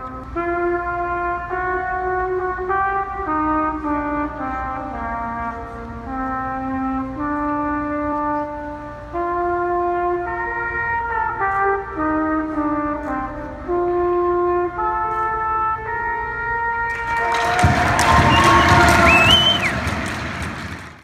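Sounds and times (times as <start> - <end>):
solo trumpet melody: 0.0 - 19.9
crowd cheering and clapping: 16.9 - 21.0
shrill whistle from crowd: 17.0 - 20.2.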